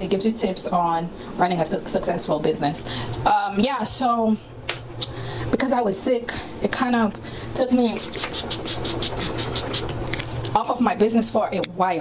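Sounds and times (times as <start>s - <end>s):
steady low hum: 0.0s - 12.0s
spray bottle spritzes: 8.0s - 9.9s.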